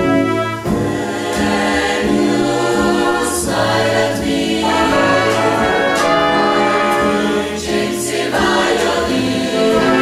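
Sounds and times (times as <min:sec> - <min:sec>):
big band playing: 0:00.0 - 0:10.0
mixed choir singing: 0:00.0 - 0:10.0
bass line: 0:04.5 - 0:07.9.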